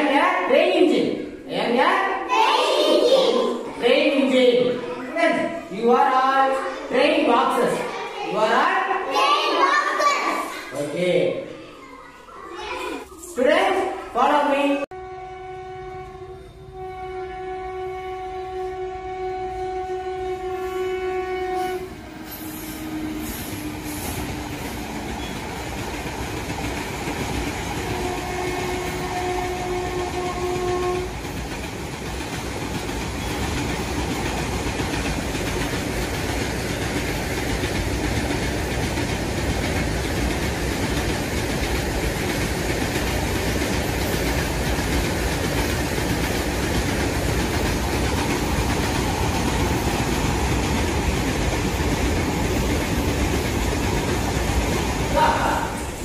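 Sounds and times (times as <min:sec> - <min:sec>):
train horn: 0:14.9 - 0:24.0, 0:27.9 - 0:31.2
moving train rumble and clatter: 0:20.1 - 0:56.0.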